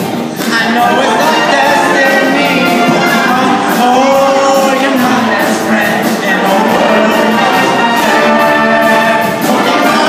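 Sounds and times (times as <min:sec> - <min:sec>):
live band with brass horns: 0:00.0 - 0:10.0
steady drum beat: 0:00.0 - 0:10.0.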